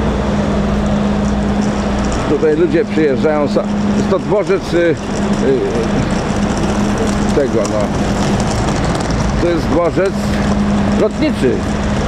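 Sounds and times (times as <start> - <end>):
coach engine idling: 0.0 - 12.0.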